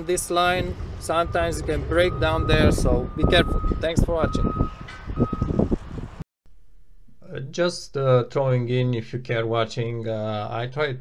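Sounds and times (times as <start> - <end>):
high electronic beeps: 1.1 - 5.6
man's voice: 7.2 - 11.0.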